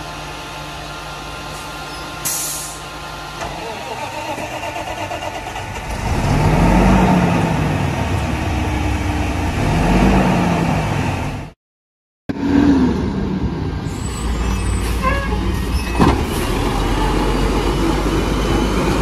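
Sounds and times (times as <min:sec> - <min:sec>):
truck engine revving: 0:03.5 - 0:11.6, 0:12.3 - 0:19.0.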